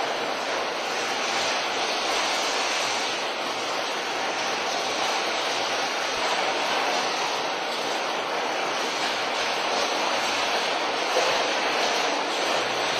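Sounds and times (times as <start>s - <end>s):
steady rushing noise: 0.0s - 12.9s.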